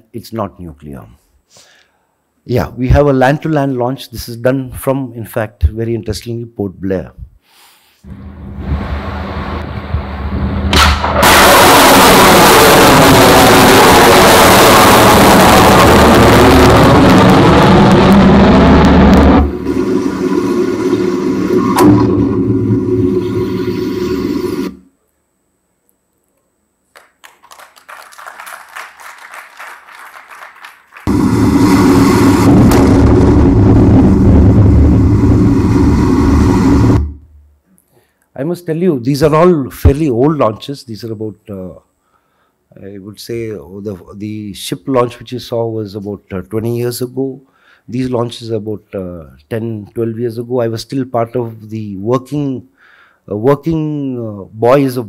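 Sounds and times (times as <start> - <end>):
missile launch roar: 8.1 - 24.8, 31.0 - 37.2.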